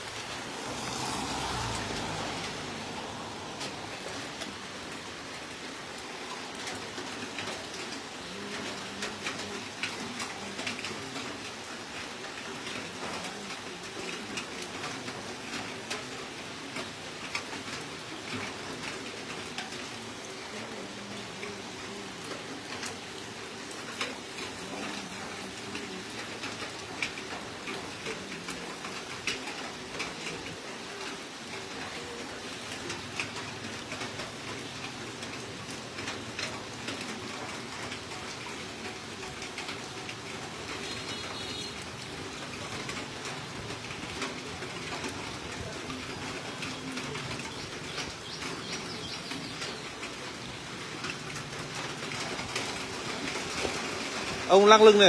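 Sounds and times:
fat crackling on charcoal: 0.0s - 5.0s.

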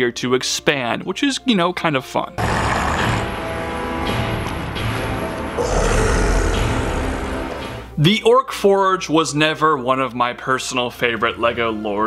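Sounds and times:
creature growling deeply: 2.4s - 3.4s, 5.5s - 7.7s
dramatic orchestral music: 3.0s - 8.0s.

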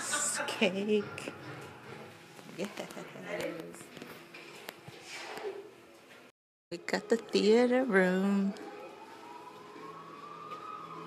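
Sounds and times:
faint siren-like wailing tone: 6.9s - 11.0s.

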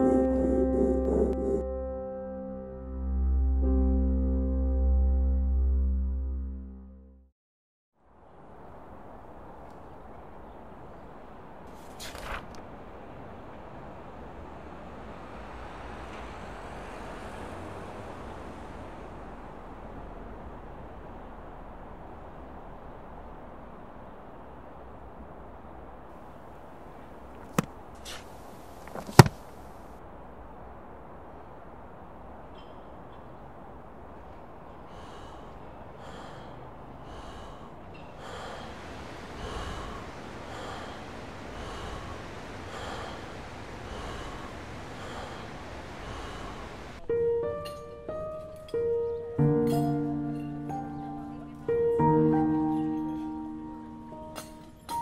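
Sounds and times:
soft hiss: 25.6s - 35.8s, 37.5s - 47.4s
person breathing fast and heavily: 34.8s - 47.0s
low even rumble: 37.0s - 47.4s.

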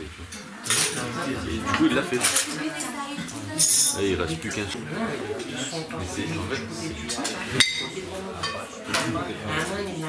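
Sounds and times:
metal spoons and plates clattering: 0.3s - 4.2s, 7.1s - 9.9s.

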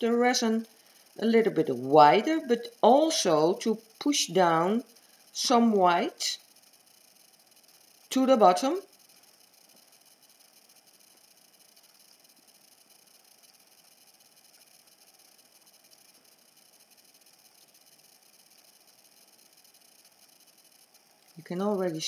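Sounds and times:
faint steady hiss: 0.0s - 22.0s.

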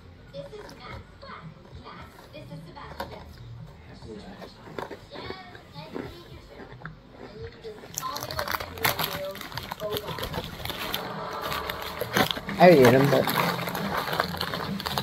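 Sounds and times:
plastic wrapper crinkling: 7.6s - 15.0s.

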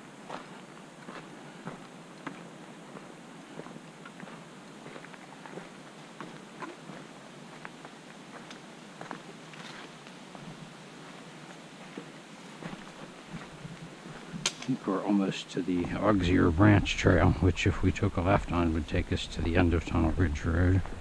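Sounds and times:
footsteps on dirt trail: 0.2s - 14.7s, 15.7s - 17.3s.

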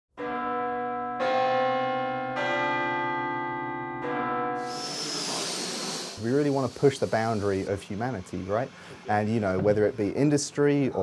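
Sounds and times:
church bells ringing: 0.2s - 4.8s
hiss: 4.6s - 9.3s.

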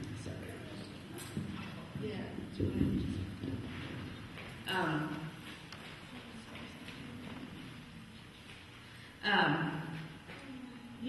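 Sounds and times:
woman speaking: 4.7s - 5.4s, 9.2s - 11.0s.

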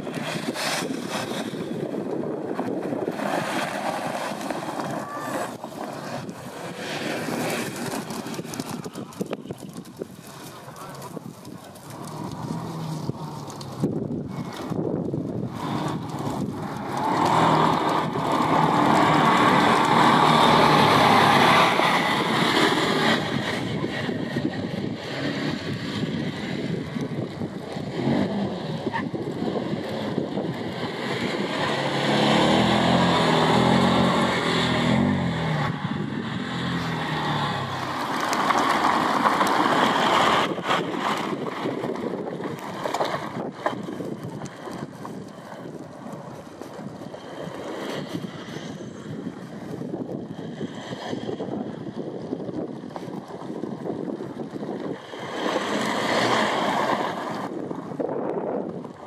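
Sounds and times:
off-road vehicle engine revving: 0.0s - 58.8s.

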